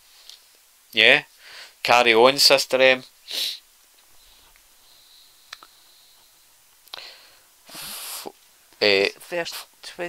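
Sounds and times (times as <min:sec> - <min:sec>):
faint sharp clicks: 0:05.5 - 0:05.8.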